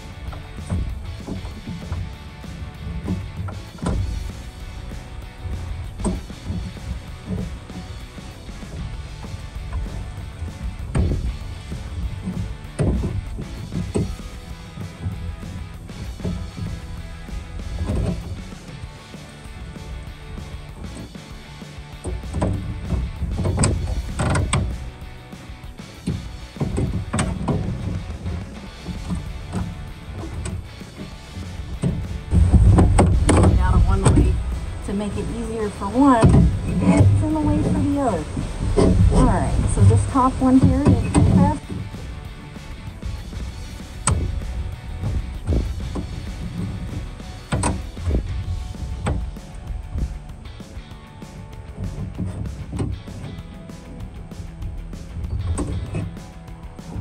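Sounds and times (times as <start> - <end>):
background music: 0.0 - 57.0.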